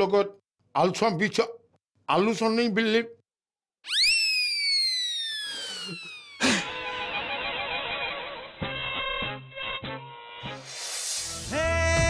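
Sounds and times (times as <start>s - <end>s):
synthesized tone gliding downward: 4.8s - 6.4s.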